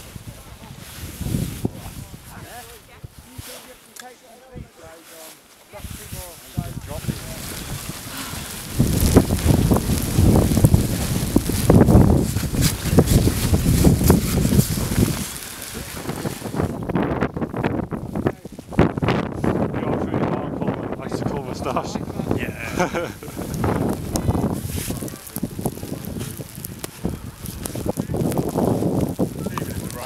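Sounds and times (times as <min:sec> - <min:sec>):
wind buffeting microphone: 0:00.0 - 0:03.5, 0:05.7 - 0:30.0.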